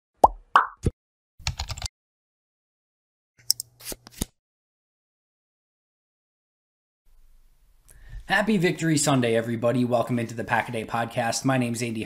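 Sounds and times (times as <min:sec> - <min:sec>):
pop sound effects: 0:00.2 - 0:01.0
keyboard typing clicks: 0:01.4 - 0:01.9.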